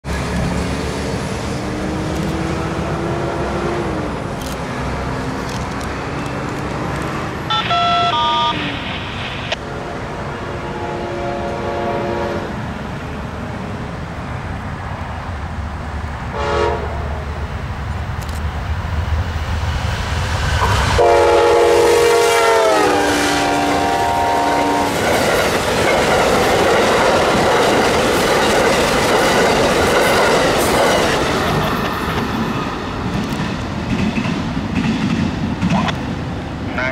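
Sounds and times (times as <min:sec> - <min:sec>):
passenger cars rushing past: 0:00.0 - 0:10.6
locomotive horn blasts: 0:07.5 - 0:08.8, 0:10.5 - 0:12.6, 0:16.3 - 0:17.0, 0:21.0 - 0:25.0.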